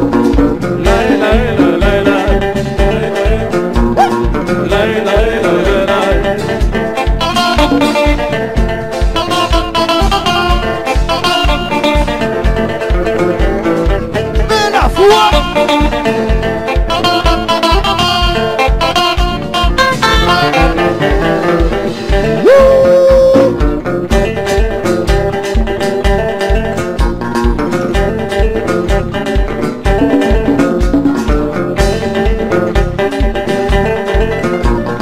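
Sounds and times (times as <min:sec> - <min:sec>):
electric guitar: 0:00.0 - 0:35.0
keyboard playing: 0:03.9 - 0:04.5, 0:13.6 - 0:15.8, 0:29.8 - 0:31.4.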